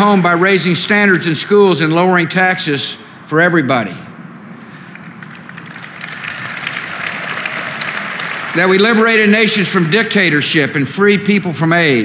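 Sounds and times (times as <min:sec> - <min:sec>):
audience applauding: 0:04.8 - 0:10.2.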